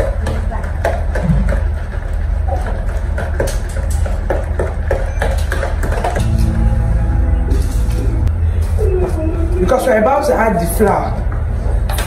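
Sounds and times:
steady musical tones: 0:06.2 - 0:11.5
steady low hum: 0:06.2 - 0:11.9.

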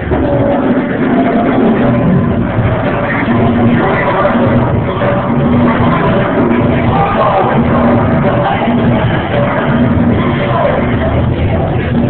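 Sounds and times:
loud bass-heavy music: 0:00.0 - 0:12.0.

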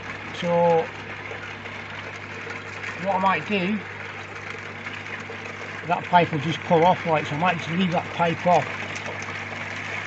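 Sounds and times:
filter pumps humming: 0:00.0 - 0:10.0
water wash: 0:00.0 - 0:10.0.

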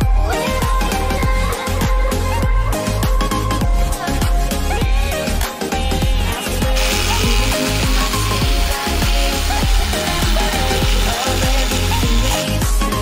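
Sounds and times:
pop music with a beat: 0:00.0 - 0:13.0.

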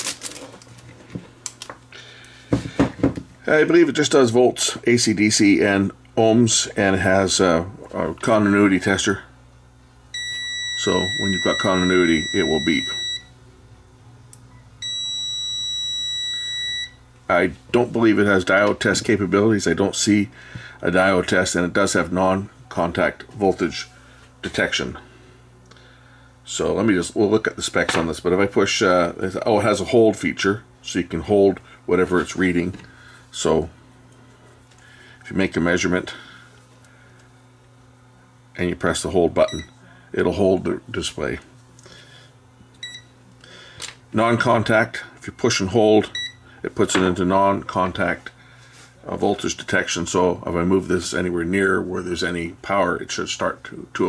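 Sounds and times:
low steady hum: 0:00.0 - 0:54.0
multimeter continuity beep: 0:10.1 - 0:13.3, 0:14.5 - 0:17.0, 0:39.4 - 0:39.8, 0:42.8 - 0:43.1, 0:46.1 - 0:46.4.

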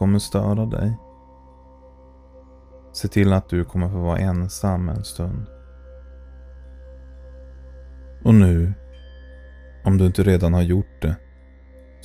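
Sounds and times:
ambient music of held tones: 0:00.0 - 0:12.0.

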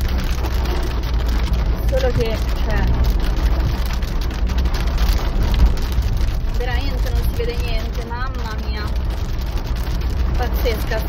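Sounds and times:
car rumble: 0:00.0 - 0:11.0
heavy rain on car roof: 0:00.0 - 0:11.0.

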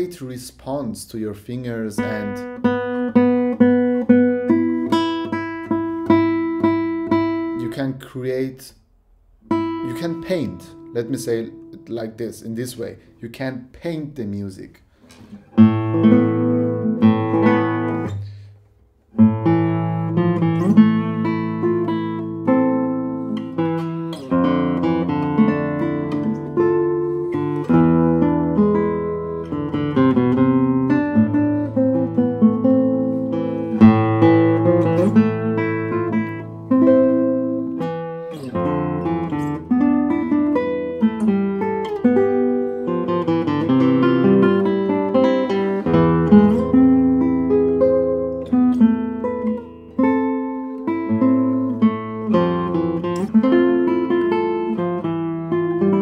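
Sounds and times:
fingerstyle classical guitar: 0:02.0 - 0:07.9, 0:09.4 - 0:12.3, 0:14.9 - 0:56.0.

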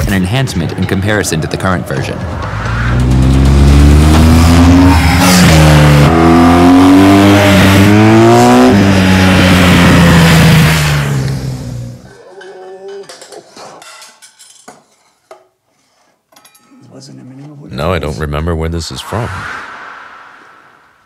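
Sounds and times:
motorcycle engine accelerating: 0:02.3 - 0:12.0
metal and glass trophies clinking: 0:16.3 - 0:17.0.

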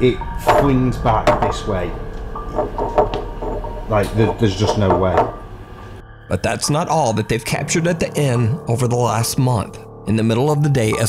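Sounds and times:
people talking indistinctly: 0:03.9 - 0:05.4, 0:06.2 - 0:11.0.

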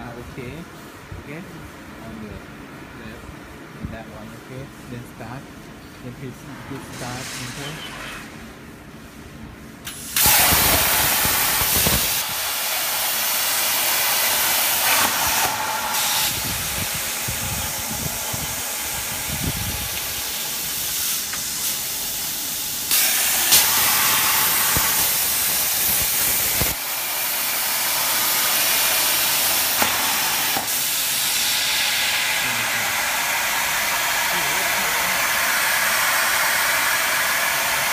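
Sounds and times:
plasma cutter hissing: 0:09.8 - 0:37.9.

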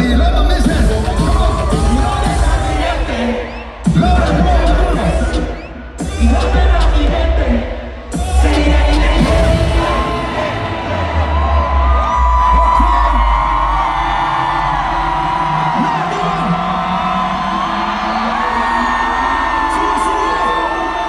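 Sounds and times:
amplified concert music: 0:00.0 - 0:21.0
crowd screaming and whooping: 0:00.0 - 0:21.0.

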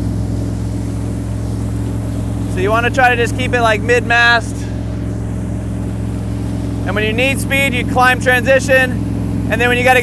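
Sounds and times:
boat engine droning: 0:00.0 - 0:10.0.

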